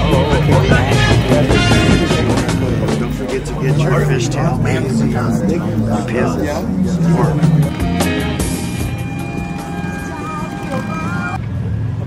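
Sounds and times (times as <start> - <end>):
song with voice: 0.0 - 11.4
motorcycle engines idling: 0.0 - 12.0.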